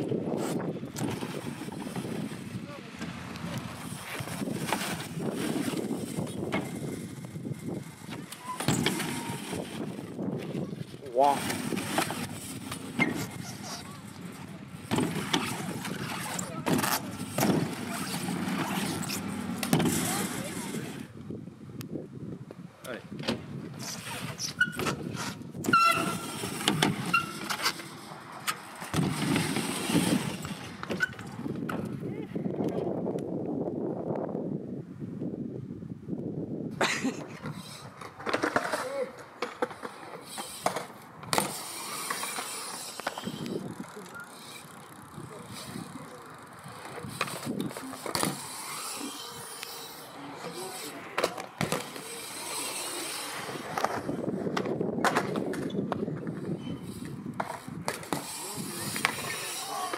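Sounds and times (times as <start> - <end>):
bike tyres rolling on ramp: 0.0 - 21.4, 23.4 - 33.0, 37.1 - 59.9.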